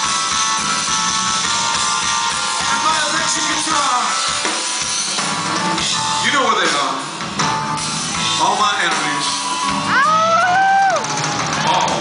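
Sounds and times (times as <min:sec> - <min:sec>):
bass guitar: 0:00.0 - 0:12.0
drums: 0:00.0 - 0:12.0.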